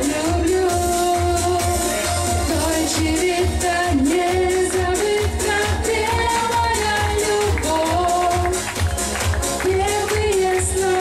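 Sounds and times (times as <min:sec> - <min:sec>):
music with bass beat: 0:00.0 - 0:11.0
woman singing pop song: 0:00.0 - 0:11.0.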